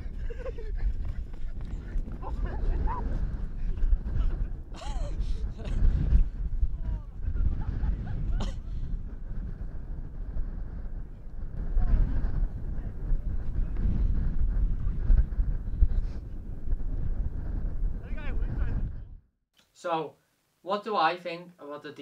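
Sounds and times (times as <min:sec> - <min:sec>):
wind buffeting microphone: 0:00.0 - 0:19.3.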